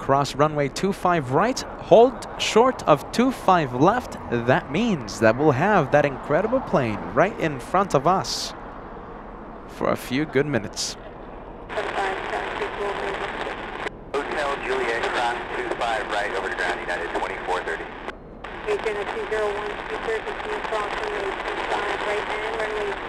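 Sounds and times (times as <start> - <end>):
voices over radio: 0.0 - 8.5, 9.7 - 11.0, 11.7 - 23.0
radio static hiss: 11.7 - 23.0.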